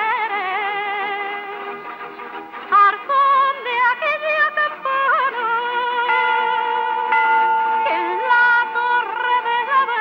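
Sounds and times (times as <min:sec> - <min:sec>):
woman singing with vibrato: 0:00.0 - 0:01.7, 0:02.7 - 0:10.0.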